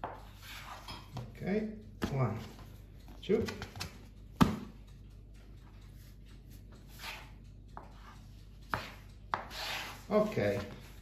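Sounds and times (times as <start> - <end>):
dough rubbing on wood: 0.0 - 0.9, 5.9 - 11.0.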